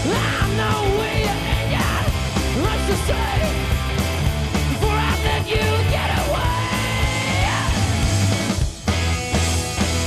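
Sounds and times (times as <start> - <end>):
man yelling: 0.0 - 3.6, 4.7 - 8.0
rock band playing: 0.0 - 10.0.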